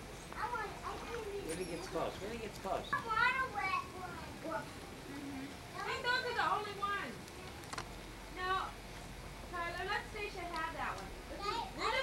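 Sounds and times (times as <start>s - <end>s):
quiet talk: 0.1s - 12.0s
child speaking high-pitched: 0.4s - 1.4s, 3.0s - 4.6s, 11.4s - 12.0s.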